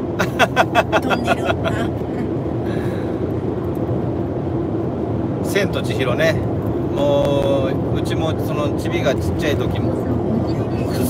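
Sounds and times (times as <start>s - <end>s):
car cabin road and engine noise: 0.0s - 11.0s
man laughing: 0.2s - 2.3s.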